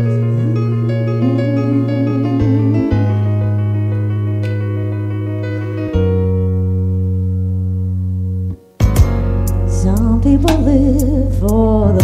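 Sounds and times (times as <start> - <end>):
band holding sustained chord: 0.0 - 8.3.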